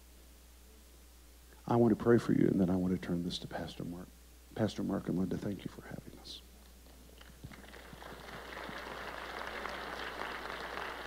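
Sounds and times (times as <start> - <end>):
audience applause: 7.5 - 11.0.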